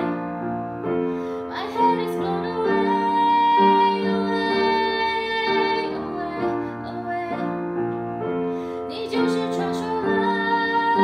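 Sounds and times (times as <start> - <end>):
upright piano chords: 0.0 - 11.0.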